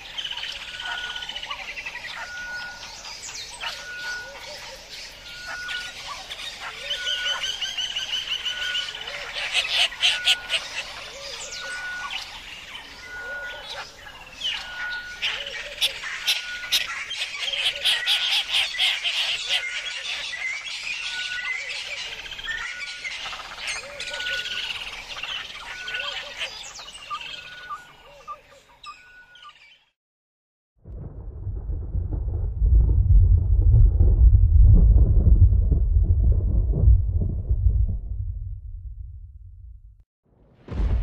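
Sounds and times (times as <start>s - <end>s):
birds chirping and calling: 0.0s - 29.9s.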